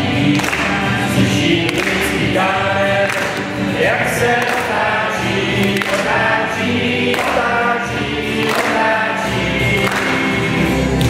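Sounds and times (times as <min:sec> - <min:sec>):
low instrumental accompaniment: 0:00.0 - 0:11.0
mixed choir singing: 0:00.0 - 0:11.0.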